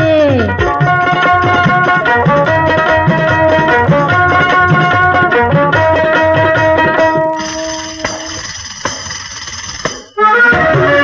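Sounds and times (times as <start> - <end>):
film song by full band: 0.0 - 8.3, 10.1 - 11.0
sharp percussion strikes: 0.0 - 11.0
metallic jingling: 7.3 - 10.2.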